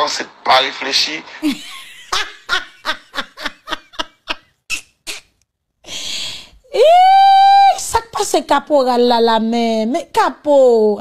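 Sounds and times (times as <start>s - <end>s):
woman laughing: 1.4s - 5.3s.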